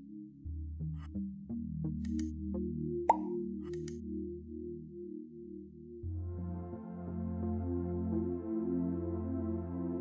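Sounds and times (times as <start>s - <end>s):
ambient music low pad tones: 0.0s - 10.0s
water drop plop: 3.1s - 3.4s.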